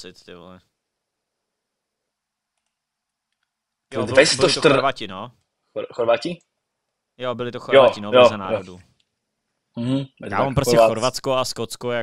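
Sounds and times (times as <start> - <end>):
faint clicks: 2.5 - 3.8.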